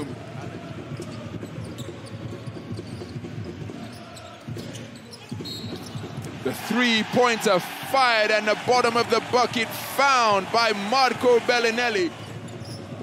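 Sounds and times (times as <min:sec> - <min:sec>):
murmur of arena crowd: 0:00.0 - 0:13.0.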